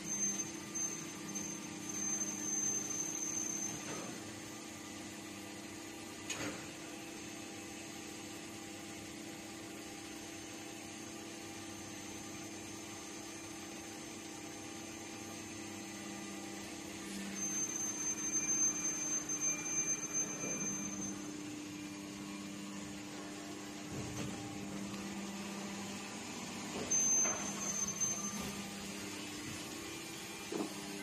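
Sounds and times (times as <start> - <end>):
high whistle: 0.0 - 4.1, 17.1 - 21.4, 26.8 - 28.6
machine running with low hum: 0.0 - 31.0.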